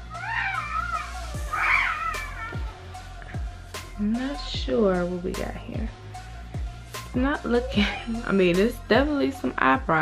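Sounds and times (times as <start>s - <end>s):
background music: 0.0s - 10.0s
cat meowing: 0.1s - 2.7s.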